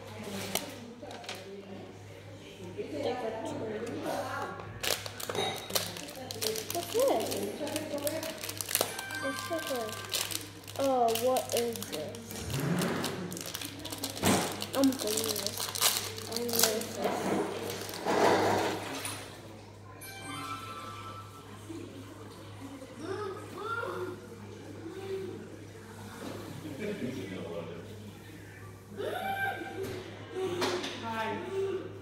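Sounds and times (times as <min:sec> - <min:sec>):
low electrical hum: 0:00.0 - 0:32.0.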